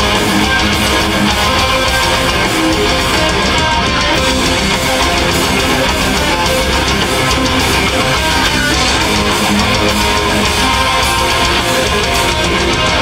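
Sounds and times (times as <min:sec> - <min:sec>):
bass guitar: 0:00.0 - 0:13.0
distorted electric guitars: 0:00.0 - 0:13.0
drums: 0:00.0 - 0:13.0.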